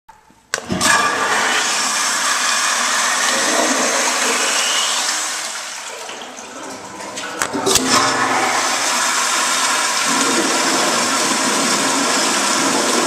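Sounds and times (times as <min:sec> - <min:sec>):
toilet flush water rushing: 0:00.6 - 0:13.0.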